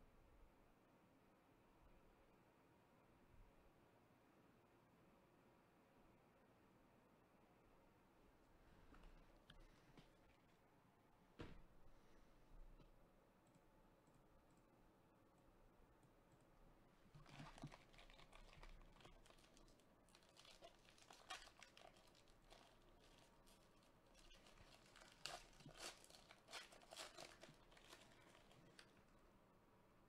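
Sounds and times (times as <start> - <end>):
foil wrapper tearing and crinkling: 17.1 - 29.1.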